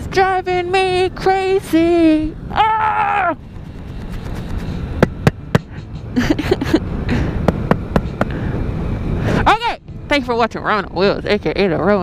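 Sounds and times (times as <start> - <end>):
scooter rumbling: 0.0 - 9.5
wind noise: 0.0 - 11.9.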